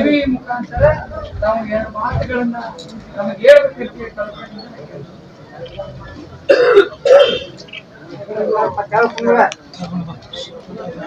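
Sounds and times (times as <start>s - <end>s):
low crowd noise: 0.0s - 11.0s
man clearing his throat: 6.5s - 7.6s.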